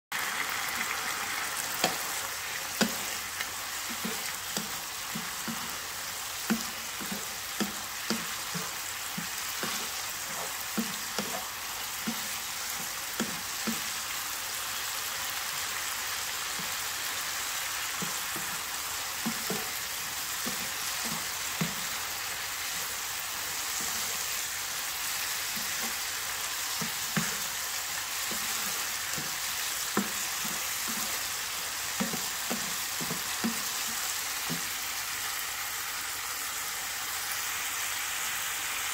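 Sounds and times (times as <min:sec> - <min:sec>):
food sizzling in oil: 0:00.1 - 0:38.9
wooden spatula scraping a pan: 0:01.6 - 0:14.0, 0:18.0 - 0:22.0, 0:22.6 - 0:24.5, 0:25.4 - 0:34.7.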